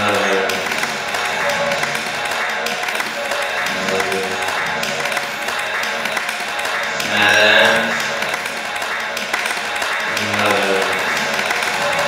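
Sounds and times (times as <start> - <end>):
experimental sound collage music: 0.0 - 12.0.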